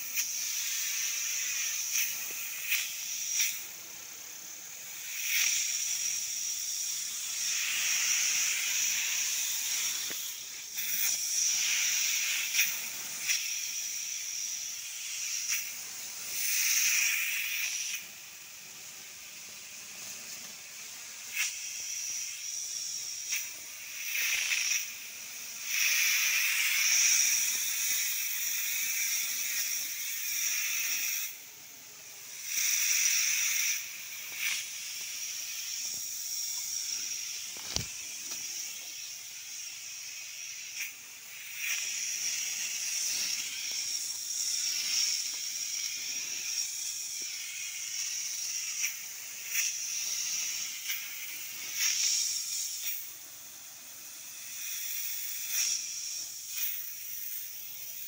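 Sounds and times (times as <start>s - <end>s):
spray lance hissing: 0.0s - 58.0s.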